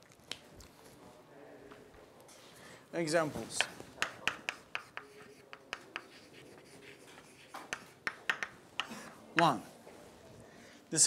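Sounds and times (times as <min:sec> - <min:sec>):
chalk tapping and scraping on blackboard: 0:03.5 - 0:09.6.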